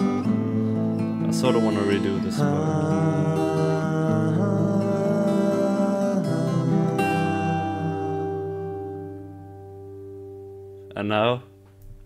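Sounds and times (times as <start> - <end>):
acoustic guitar music: 0.0 - 12.0.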